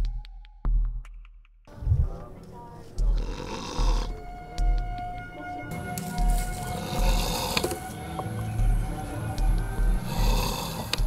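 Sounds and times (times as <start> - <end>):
man snoring: 3.1 - 4.2, 6.7 - 7.8, 9.8 - 11.0
hissing breath: 3.2 - 4.2, 6.5 - 8.0, 10.0 - 11.0.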